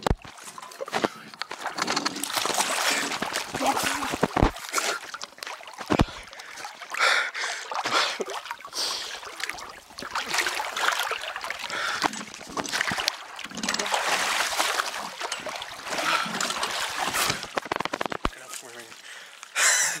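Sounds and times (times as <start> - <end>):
water splashing and sloshing: 0.0 - 20.0.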